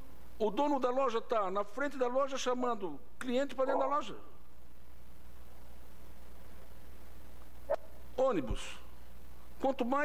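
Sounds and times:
low microphone hum: 0.0s - 10.0s.

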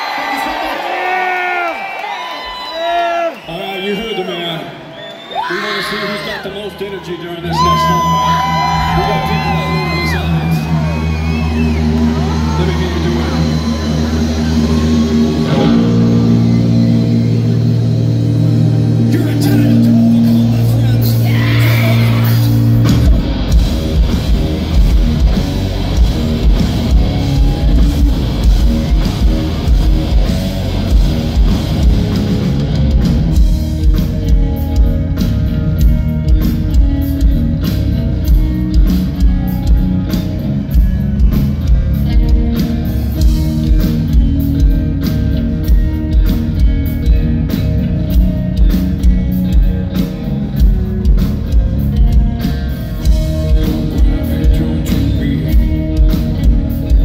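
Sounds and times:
heavy electric guitar: 7.6s - 57.0s
drum kit beat: 10.1s - 57.0s.

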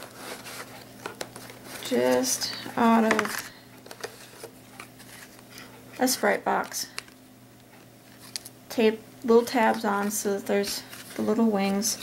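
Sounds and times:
cardboard scraping against envelopes: 0.0s - 6.2s, 9.7s - 12.0s.

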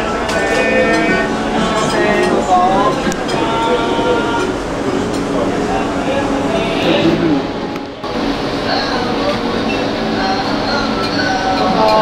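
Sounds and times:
background voices: 0.0s - 12.0s.

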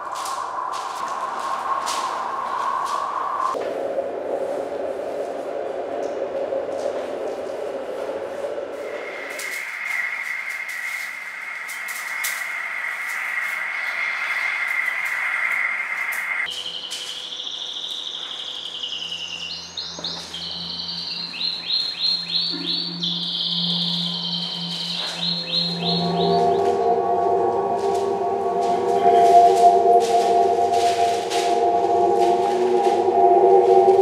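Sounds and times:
chirping electronic sweeps: 8.7s - 34.0s
low electronic hum: 16.5s - 34.0s
high synthesized tones: 20.2s - 34.0s
warbling electronic tones: 22.4s - 34.0s.

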